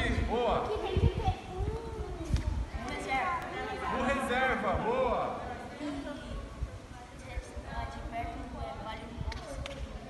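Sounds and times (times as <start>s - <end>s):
children talking faintly: 0.0s - 10.0s.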